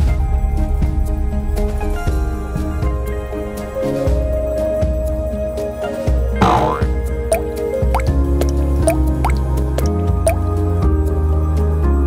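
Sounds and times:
slow music of low notes: 0.0 - 12.0
rising water-drop bloops: 6.4 - 10.4.

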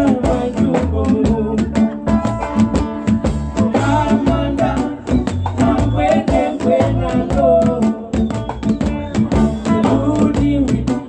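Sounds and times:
person singing: 0.0 - 2.0, 3.6 - 8.3, 9.4 - 11.0
bass guitar: 0.0 - 11.0
electric guitar: 0.0 - 11.0
fast rattle and drum beat: 0.0 - 11.0.

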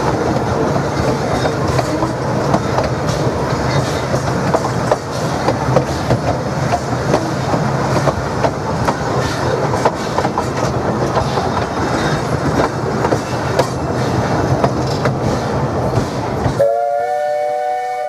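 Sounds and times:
wheels clicking over rail joints: 0.0 - 16.6
train rumbling: 0.0 - 18.0
steam locomotive chime whistle: 16.6 - 18.0.

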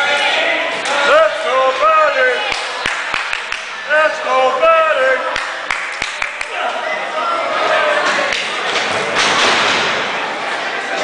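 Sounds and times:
crowd roar in hall: 0.0 - 11.0.

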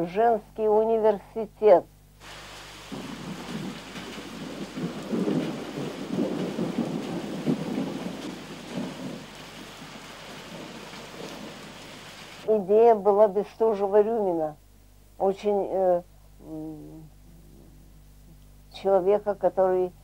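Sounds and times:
heavy rain pouring: 2.2 - 12.5
rolling thunder rumble: 2.2 - 12.5.

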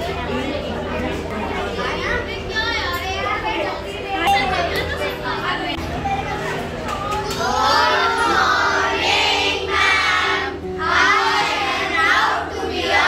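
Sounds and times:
children speaking in chorus: 1.6 - 13.0
background music with held notes: 7.4 - 13.0.

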